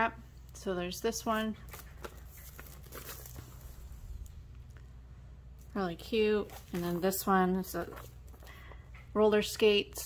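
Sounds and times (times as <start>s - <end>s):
low steady hum: 0.0s - 10.0s
plastic package rustling: 1.7s - 4.4s.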